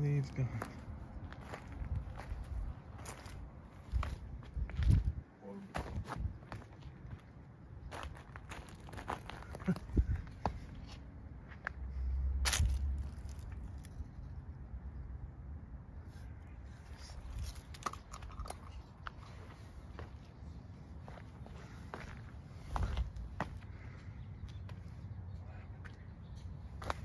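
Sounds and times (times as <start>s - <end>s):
footsteps crunching on mulch and leaves: 7.9s - 9.7s, 12.4s - 13.9s.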